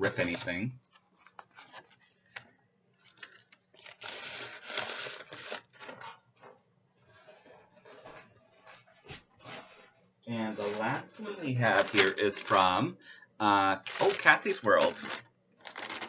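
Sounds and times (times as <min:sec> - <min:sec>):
paper rustling and sliding: 0:00.0 - 0:12.7, 0:13.8 - 0:16.0.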